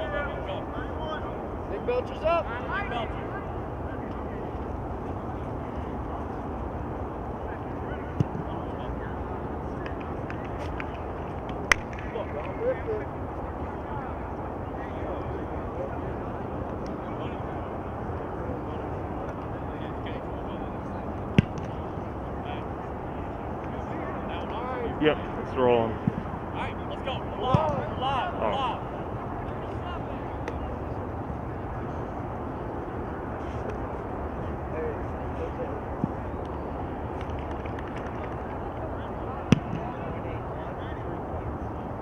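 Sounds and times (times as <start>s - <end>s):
faint distant voices: 0.0s - 42.0s
sharp smacks: 11.5s - 12.1s.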